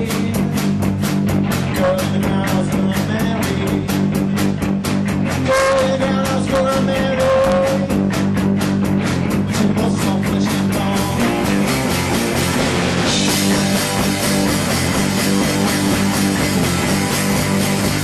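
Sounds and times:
electric guitar: 0.0s - 18.0s
fast drumbeat: 0.0s - 18.0s.

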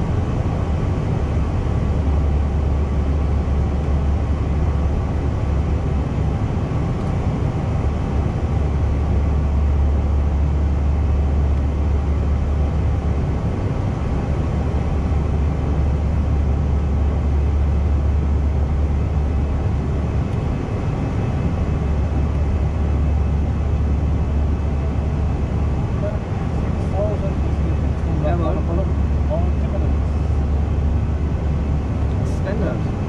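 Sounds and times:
cockpit airflow and engine noise: 0.0s - 33.0s.

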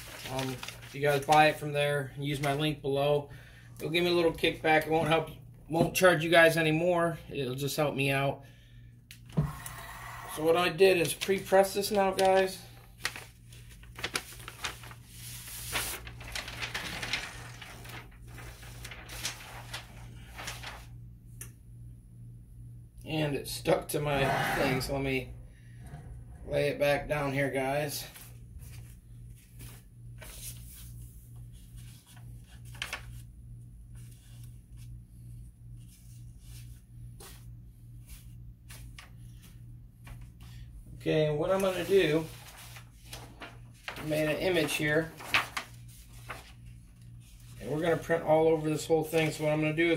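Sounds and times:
paper rustling and crinkling: 0.0s - 2.8s, 10.8s - 21.0s, 28.0s - 33.3s, 33.9s - 35.0s, 35.7s - 40.7s, 41.5s - 49.8s
low steady hum: 0.0s - 49.9s
pulsing electrical hum: 11.8s - 32.2s.

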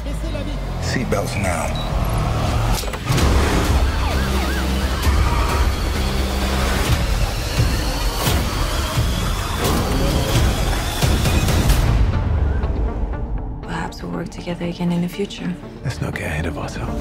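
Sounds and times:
car engine driven hard: 0.0s - 11.8s
police siren: 3.1s - 11.8s.

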